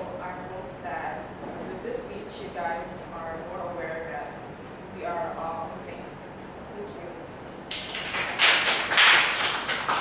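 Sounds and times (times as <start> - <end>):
audience applauding: 7.7 - 10.0.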